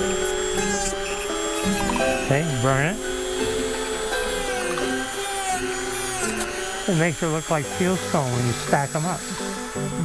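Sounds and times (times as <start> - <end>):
background music: 0.0 - 10.0
cutoff wheel cutting wood: 0.0 - 10.0
rotary tool whining: 0.0 - 10.0.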